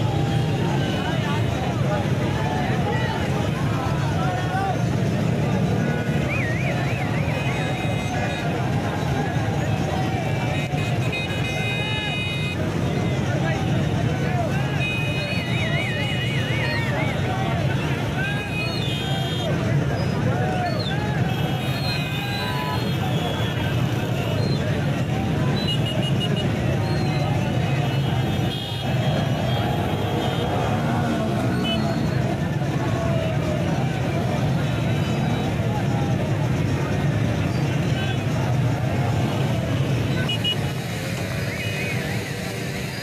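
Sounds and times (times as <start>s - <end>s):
car and motorcycle engines running: 0.0s - 43.0s
crowd shouting: 0.0s - 43.0s
vehicle horns: 10.2s - 12.8s, 25.4s - 27.0s, 27.6s - 30.8s, 31.4s - 32.3s, 39.2s - 42.6s.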